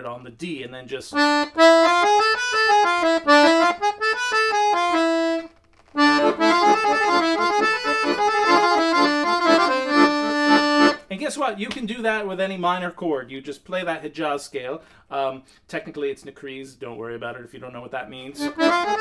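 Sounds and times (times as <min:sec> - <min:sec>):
piano accordion melodic run: 0:01.2 - 0:11.0, 0:18.4 - 0:19.0.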